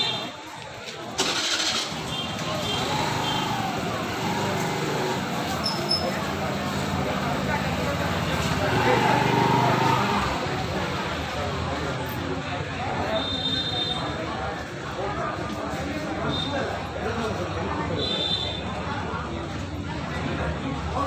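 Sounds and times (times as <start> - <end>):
crowd voices: 0.0 - 21.0.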